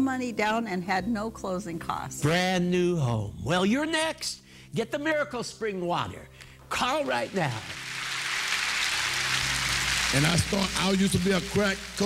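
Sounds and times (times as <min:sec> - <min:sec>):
large audience applauding: 0:06.9 - 0:12.0.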